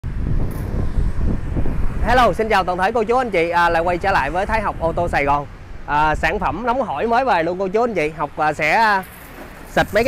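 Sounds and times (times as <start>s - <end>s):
wind noise on microphone: 0.0s - 7.0s
street traffic: 0.0s - 10.0s.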